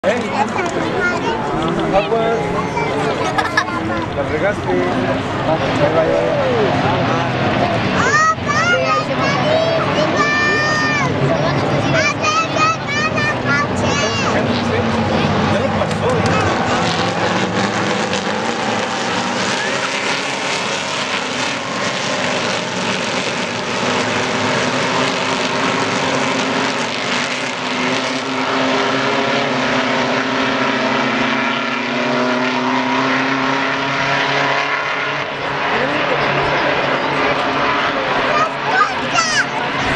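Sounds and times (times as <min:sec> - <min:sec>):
race trucks passing: 0:00.0 - 0:39.9.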